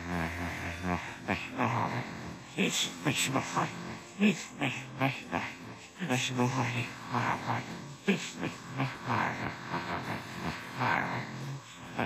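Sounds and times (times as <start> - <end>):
synthesized voice attempting to sing: 0.0 - 12.0.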